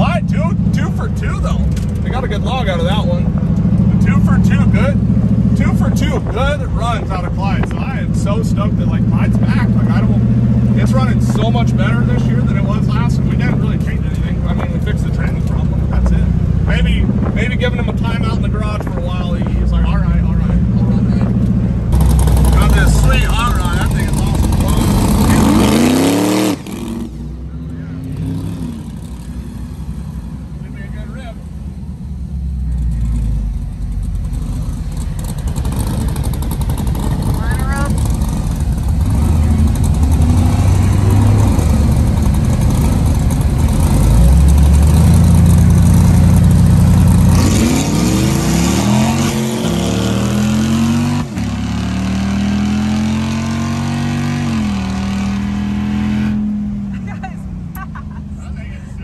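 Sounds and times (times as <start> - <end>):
loud engine running: 0.0 - 59.0
car engine accelerating through upshifts: 20.4 - 30.4, 32.4 - 57.9.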